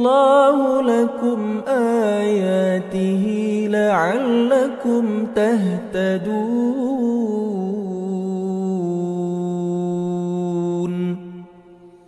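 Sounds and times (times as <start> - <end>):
hall reverberation: 0.0 - 12.0.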